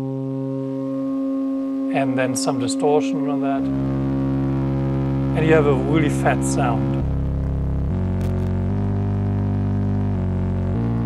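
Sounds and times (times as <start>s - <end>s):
low synthesizer drone: 0.0s - 11.0s.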